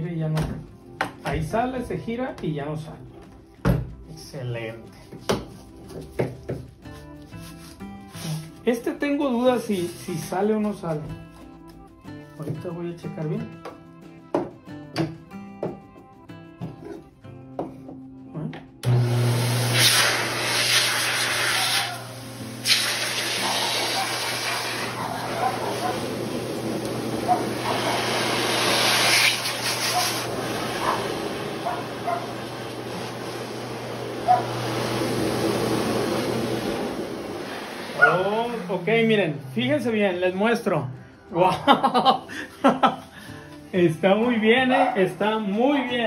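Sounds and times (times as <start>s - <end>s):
background music: 0.0s - 19.3s, 38.0s - 46.0s
blower dryer motor humming: 18.8s - 39.0s
rushing air: 34.6s - 38.6s.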